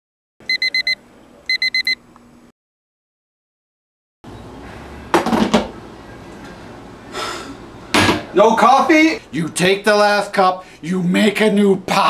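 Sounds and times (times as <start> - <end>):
alarm clock beeping: 0.5 - 2.0.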